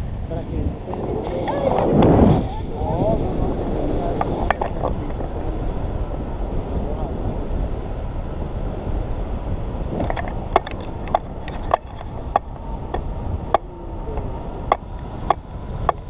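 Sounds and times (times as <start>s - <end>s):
wind rushing over microphone: 0.0s - 16.0s.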